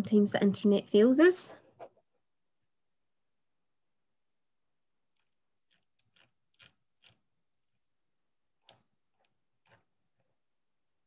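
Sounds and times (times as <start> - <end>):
faint irregular clicks: 5.1 - 7.8, 8.6 - 10.4.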